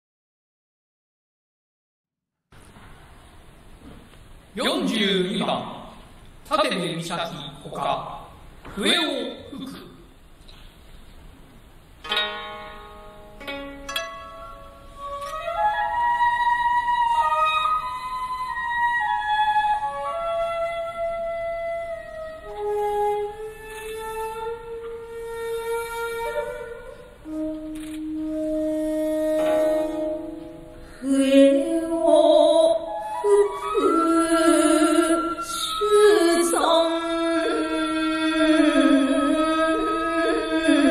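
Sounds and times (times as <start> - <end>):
plucked zither notes: 12.0 - 17.9, 27.3 - 31.7
slow flute melody: 12.0 - 40.9.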